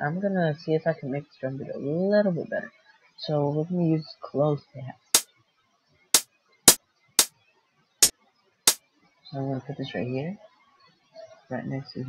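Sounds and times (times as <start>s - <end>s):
closed hi-hat hits: 6.7s - 7.3s.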